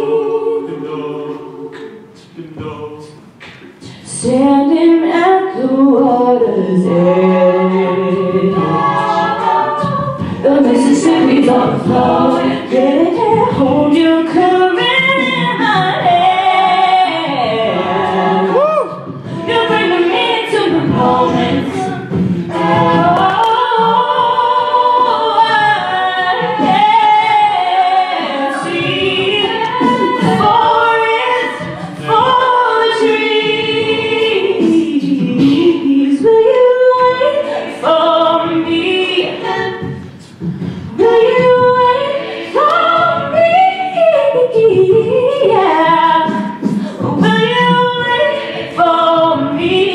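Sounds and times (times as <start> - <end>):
a cappella group singing: 0.0 - 49.9
woman singing lead: 3.8 - 49.9.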